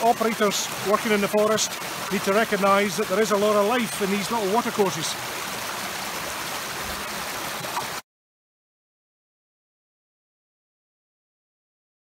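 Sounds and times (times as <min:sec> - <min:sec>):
stream water rushing: 0:00.0 - 0:08.0.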